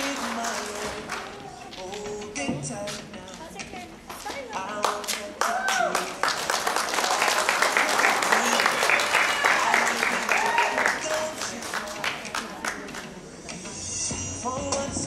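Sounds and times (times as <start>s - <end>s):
audience clapping: 0.0s - 1.8s, 4.8s - 13.1s.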